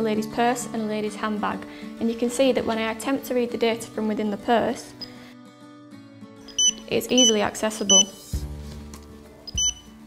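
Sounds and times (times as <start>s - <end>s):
soft background music: 0.0s - 10.0s
card reader beep: 6.5s - 8.2s, 9.5s - 9.9s.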